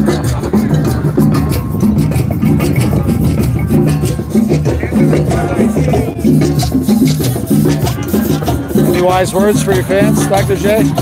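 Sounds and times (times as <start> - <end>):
hand drums beating: 0.0 - 11.0
shakers: 0.0 - 11.0.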